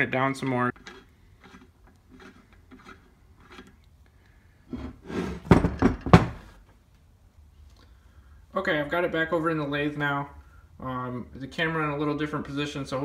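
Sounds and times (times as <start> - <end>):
metal parts rubbing and clicking: 0.7 - 3.8
metal scraping: 0.7 - 3.8, 4.7 - 5.8
metal knocking on wood: 5.4 - 6.4.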